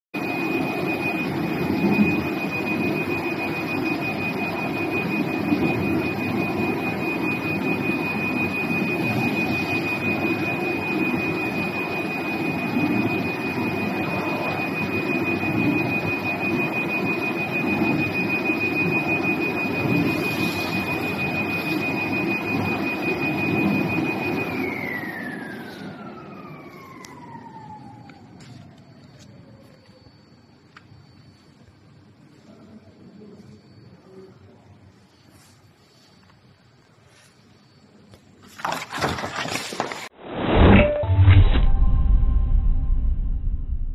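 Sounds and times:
cutting machine whine and hum: 0.2s - 31.7s.

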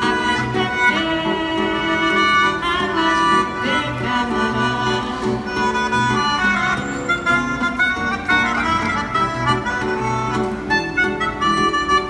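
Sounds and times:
classical guitar accompaniment: 0.0s - 12.0s
melodica melody: 0.0s - 12.0s.

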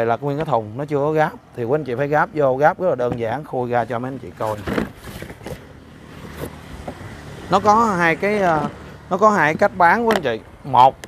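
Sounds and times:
plastic case scraping: 4.3s - 7.1s.

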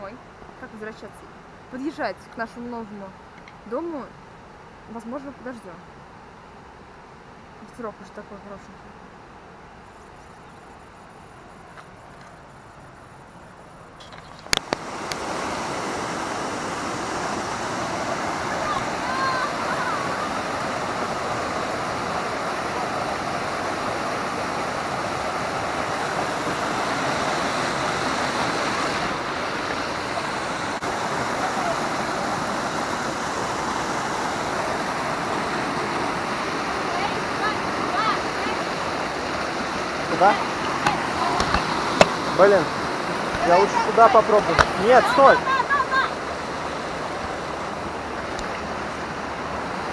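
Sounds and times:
stream rushing over boulders: 0.0s - 49.9s.

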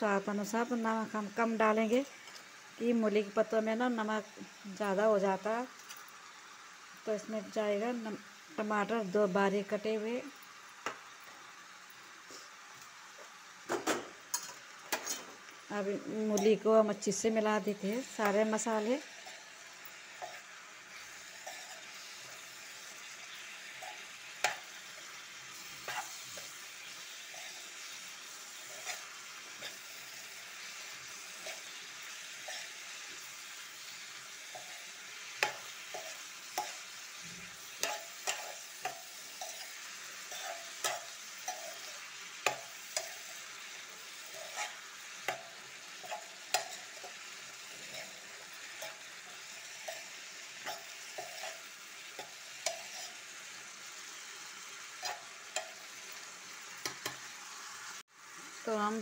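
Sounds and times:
vegetables sizzling in oil: 0.0s - 59.0s
spatula scraping a pan: 14.3s - 15.4s, 18.0s - 33.4s, 34.2s - 53.7s, 54.9s - 55.9s.

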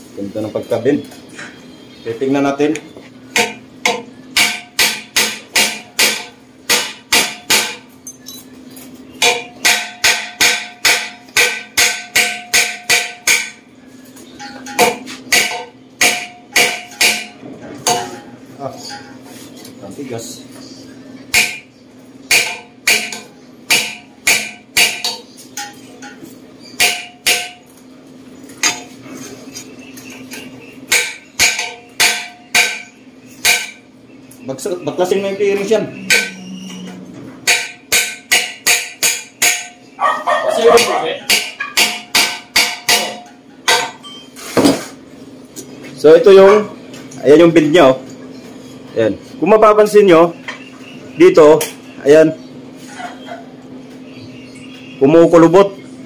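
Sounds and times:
hammer striking steel: 3.4s - 7.8s, 9.2s - 13.6s, 14.4s - 18.2s, 21.3s - 21.7s, 22.3s - 25.8s, 26.8s - 27.6s, 30.9s - 33.8s, 36.0s - 36.5s, 37.4s - 39.8s, 40.8s - 44.0s.

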